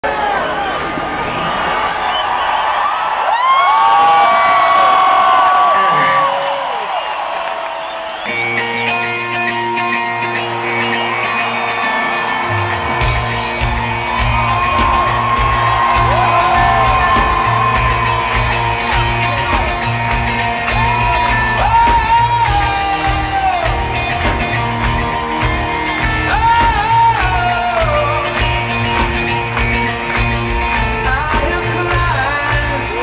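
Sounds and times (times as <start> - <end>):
crowd cheering and yelling: 0.0 - 33.0
band playing held chords: 8.3 - 33.0.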